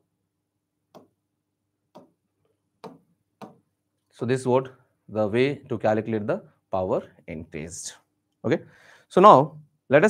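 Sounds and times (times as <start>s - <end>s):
stylus tapping on touchscreen: 0.9s - 1.2s, 1.9s - 2.2s, 2.8s - 3.7s.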